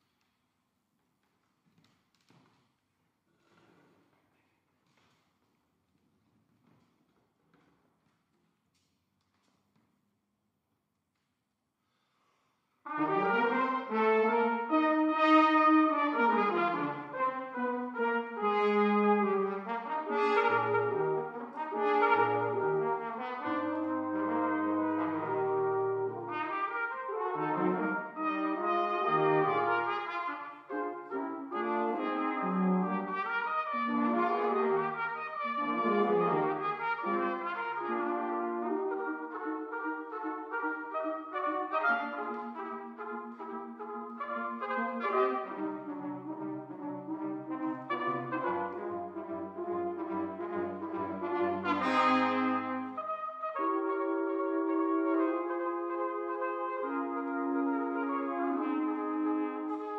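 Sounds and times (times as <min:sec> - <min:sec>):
brass quintet playing: 0:12.8 - 0:59.9
low bass brass: 0:12.9 - 0:59.9.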